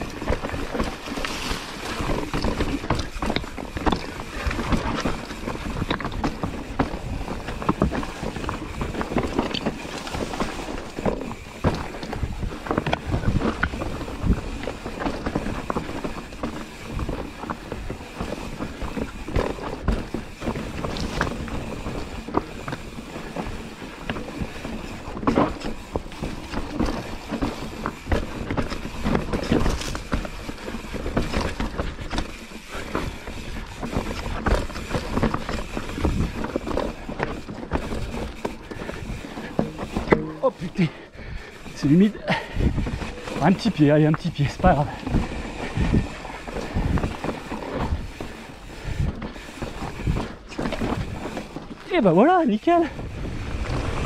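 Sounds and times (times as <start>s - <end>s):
wind noise on microphone: 0.0s - 52.0s, 52.7s - 54.0s
bike rattling and clunking: 0.0s - 54.0s
bike tyres rolling over stones: 0.0s - 54.0s.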